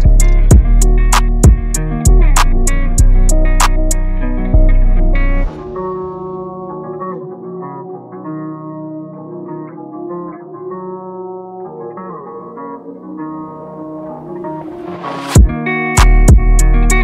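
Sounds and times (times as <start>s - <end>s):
plucked guitar melody: 0.0s - 17.0s
rising whoosh: 5.3s - 6.8s.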